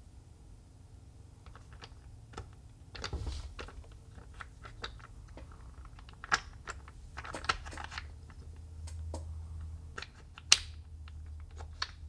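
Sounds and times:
wooden blocks clicking and tapping: 1.4 - 12.0.

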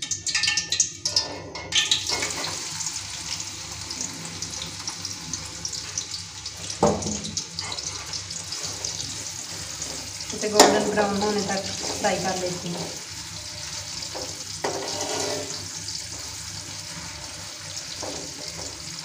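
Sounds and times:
utensils clinking on pot: 0.0 - 2.6, 10.3 - 13.0, 14.1 - 15.7
onions sizzling in hot fat: 0.1 - 19.0
knock against pot: 6.8 - 7.3.

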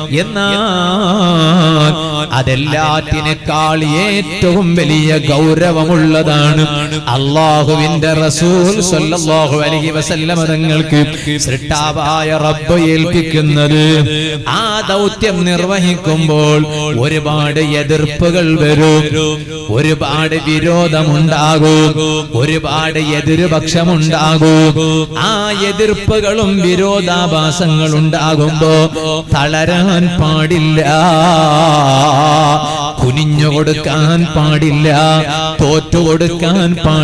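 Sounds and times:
man chanting melodically: 0.0 - 37.0.

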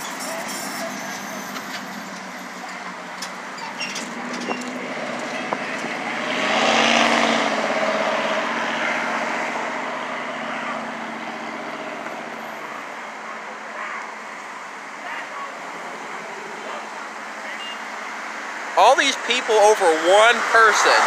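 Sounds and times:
car passing: 0.0 - 13.6, 15.0 - 21.0.

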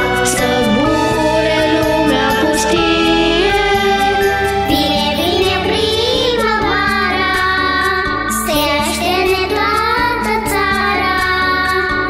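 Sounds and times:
children's choir singing: 0.0 - 12.0
instrumental backing track: 0.0 - 12.0.

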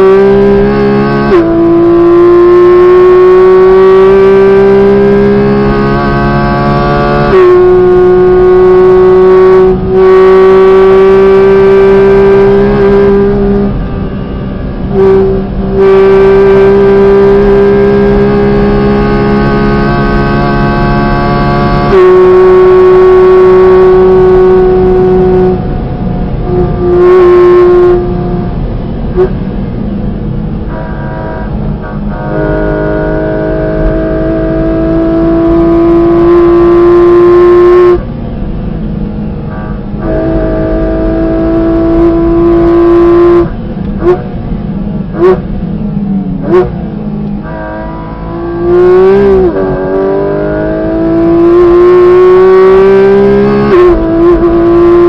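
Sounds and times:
car engine revving at high revs: 0.0 - 55.0
throttle blips on downshifts: 0.0 - 55.0.

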